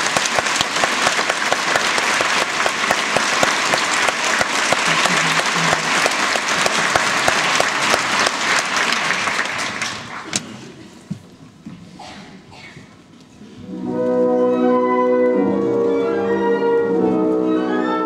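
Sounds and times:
audience applauding: 0.0 - 10.4.

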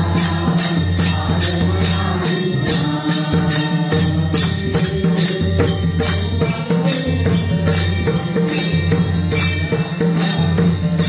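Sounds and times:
person chanting: 0.0 - 8.8
hand cymbals struck: 0.0 - 11.0.

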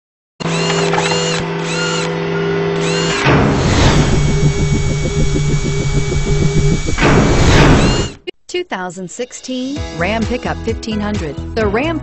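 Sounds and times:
buzzing drone: 0.4 - 8.2
whoosh: 3.2 - 8.2
fast pulsing rhythm: 3.5 - 8.2.

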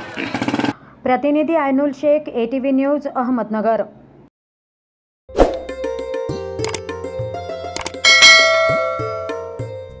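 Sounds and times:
light plucked background music: 5.3 - 10.0
bright bell chime: 8.1 - 9.5.

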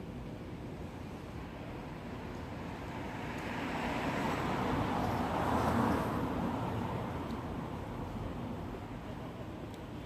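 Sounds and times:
vehicle passing on street: 1.3 - 9.1.

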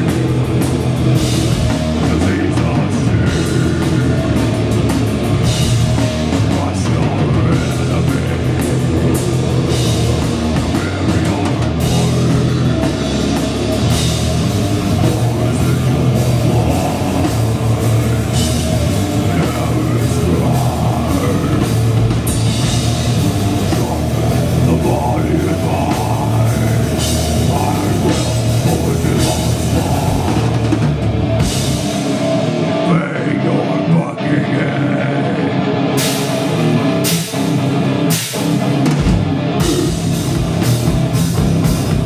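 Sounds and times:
drum kit with cymbals: 0.0 - 32.8, 35.4 - 42.0
distorted electric guitar: 0.0 - 42.0
live heavy metal band: 0.0 - 42.0.

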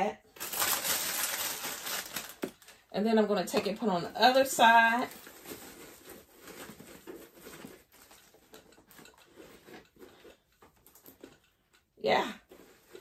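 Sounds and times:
rustling of shred filler: 0.4 - 2.8.

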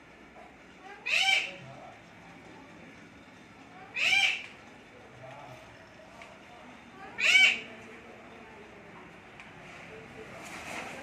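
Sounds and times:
bird calling: 1.0 - 1.7, 3.9 - 4.6, 7.1 - 7.7.

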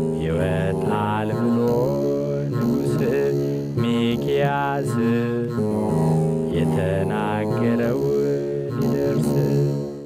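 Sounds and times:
man singing chant-like hymn: 0.0 - 9.9.

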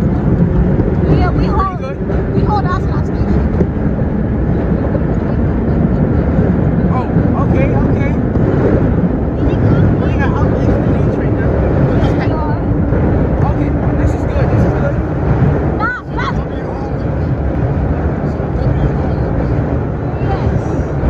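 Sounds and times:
faint voices chattering: 0.0 - 21.0
subway train rumbling in tunnel: 0.0 - 21.0.

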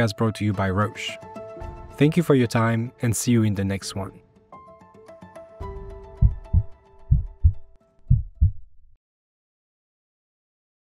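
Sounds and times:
heartbeat thumps: 6.2 - 9.0.

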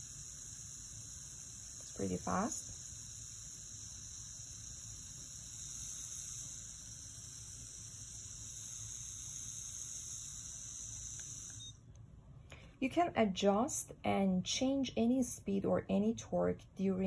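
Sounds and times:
dental motor high-pitched whine: 0.0 - 11.8.

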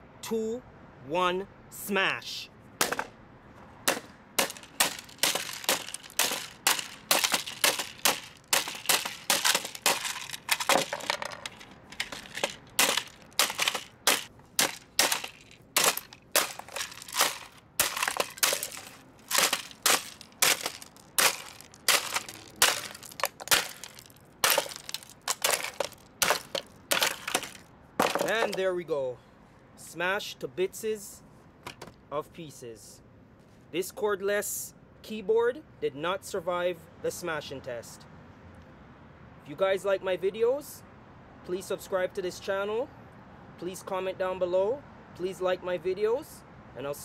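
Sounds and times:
hammer smashing plastic: 3.9 - 28.6
plastic cracking and breaking: 4.5 - 28.6.

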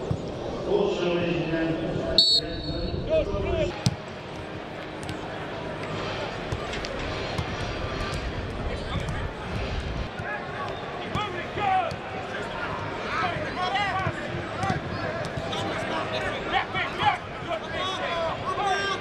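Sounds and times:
players shouting: 10.2 - 19.0.

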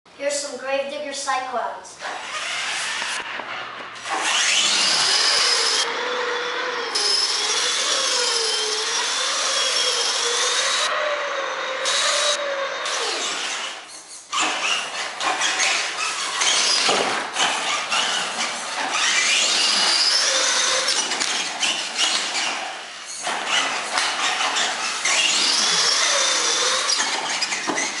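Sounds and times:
electric motors whining: 2.0 - 28.0
tires scrubbing on concrete: 14.4 - 28.0.

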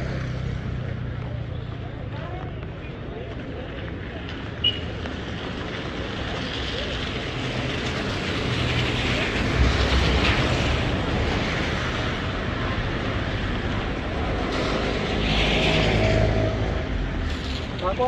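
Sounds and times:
passing vehicle engine rumble: 0.0 - 18.0
street traffic noise: 0.0 - 18.0.

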